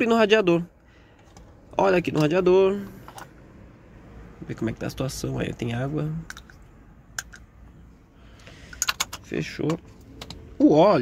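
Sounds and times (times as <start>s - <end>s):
radiator cap clicking: 6.2s - 7.5s.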